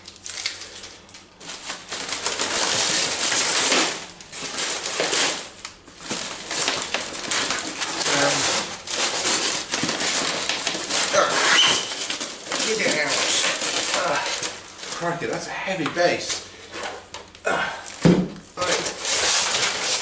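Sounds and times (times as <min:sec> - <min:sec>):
plastic wrapping crinkling: 0:00.0 - 0:20.0.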